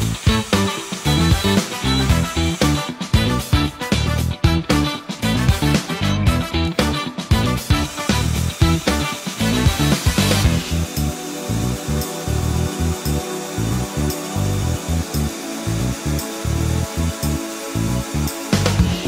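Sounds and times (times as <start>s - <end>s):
drill boring through roof tile: 0.0s - 3.7s, 7.4s - 19.0s
music with steady beat: 0.0s - 19.0s.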